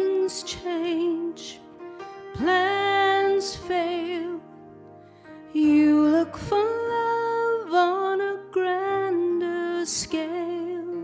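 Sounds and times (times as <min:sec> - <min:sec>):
woman singing: 0:00.0 - 0:04.6, 0:05.5 - 0:11.0
instrumental backing: 0:00.0 - 0:11.0.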